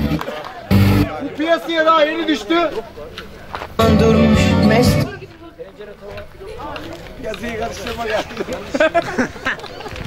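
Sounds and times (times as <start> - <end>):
voices: 0.0 - 10.0
background music: 3.8 - 5.2.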